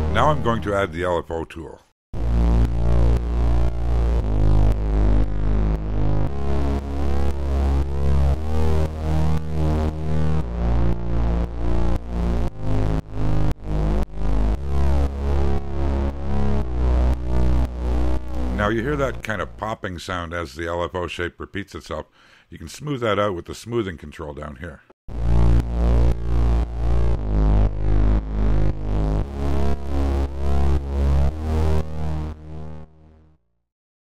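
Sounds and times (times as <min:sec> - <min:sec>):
pumping synthesizer bass line: 0:00.0 - 0:01.2, 0:02.2 - 0:19.8, 0:25.1 - 0:33.3.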